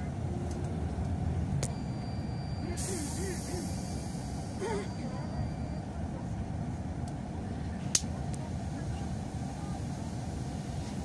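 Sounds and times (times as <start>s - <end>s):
vehicle rumble from inside: 0.0s - 11.0s
faint voices: 2.6s - 11.0s.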